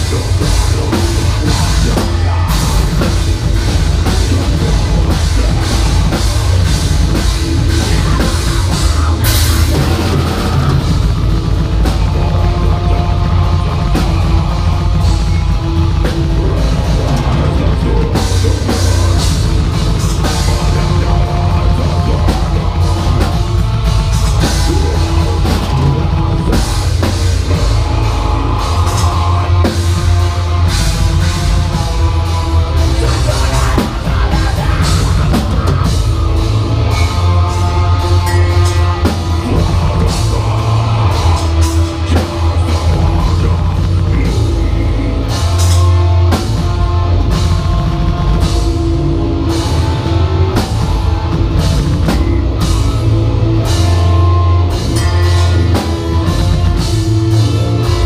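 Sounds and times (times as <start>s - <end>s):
heavy metal band playing: 0.0s - 58.0s.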